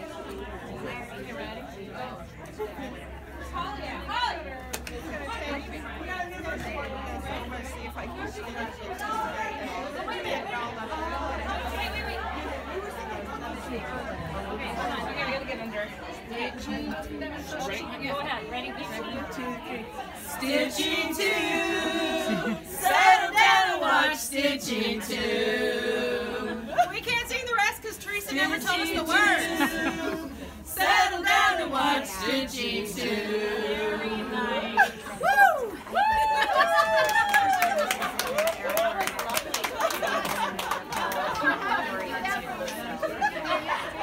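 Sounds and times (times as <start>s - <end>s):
women chattering: 0.0s - 24.0s, 24.6s - 44.0s
women singing together: 19.3s - 36.7s.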